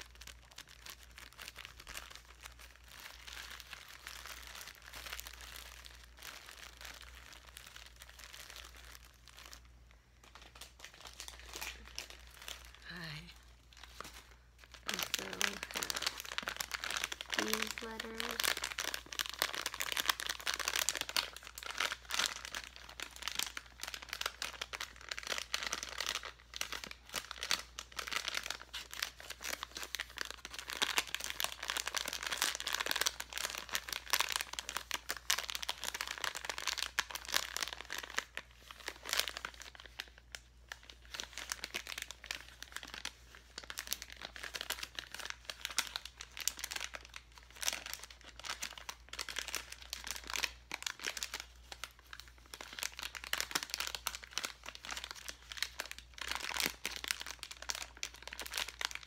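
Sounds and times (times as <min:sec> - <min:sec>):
plastic bag crinkling: 0:00.0 - 0:59.0.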